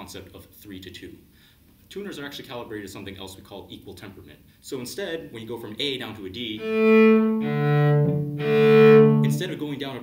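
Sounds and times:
bowed cello notes: 0:06.5 - 0:09.8.

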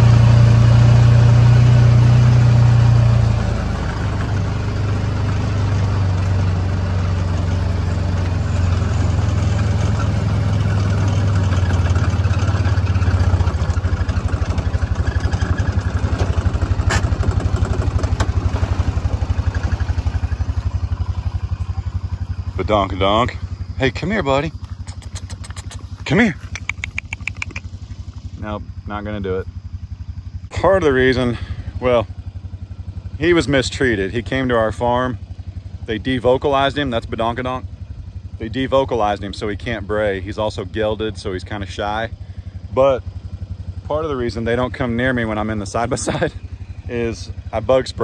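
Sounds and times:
utility vehicle engine running: 0:00.0 - 0:48.0
sharp click: 0:24.6 - 0:27.7.

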